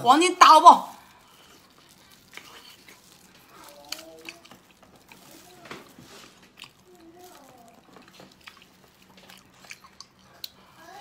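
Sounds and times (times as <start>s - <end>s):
close-up chewing: 0.9s - 11.0s
faint voice-like hum: 10.6s - 11.0s.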